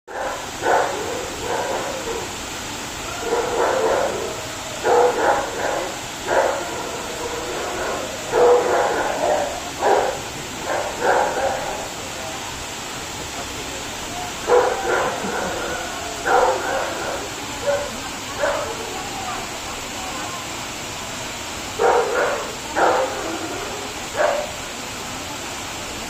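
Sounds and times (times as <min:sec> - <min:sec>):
dog barking: 0:00.1 - 0:02.3, 0:03.1 - 0:11.9, 0:14.4 - 0:18.8, 0:21.8 - 0:24.6
waterfall rushing: 0:00.1 - 0:26.0.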